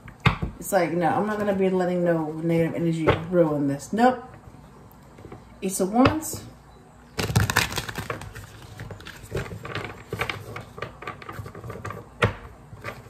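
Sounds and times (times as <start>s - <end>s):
cards being shuffled: 7.2s - 11.8s.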